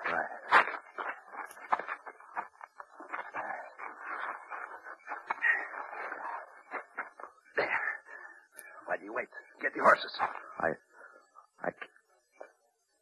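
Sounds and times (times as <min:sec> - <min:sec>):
rustling and scraping: 0:00.0 - 0:07.4.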